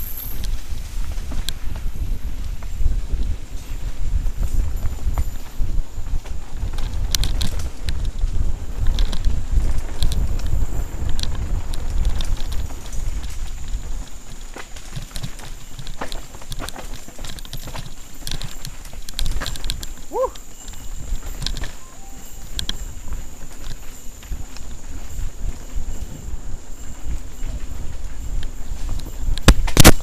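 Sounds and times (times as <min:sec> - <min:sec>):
bike tyres rumbling on dirt: 0:00.0 - 0:21.8
bike clicks and rattles: 0:00.0 - 0:30.0
wind buffeting microphone: 0:00.0 - 0:30.0.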